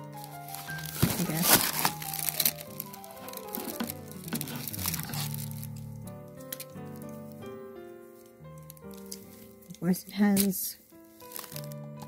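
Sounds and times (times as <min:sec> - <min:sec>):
paper and card handled: 0:00.0 - 0:07.4, 0:08.2 - 0:12.0
soft music of held notes: 0:00.0 - 0:12.0.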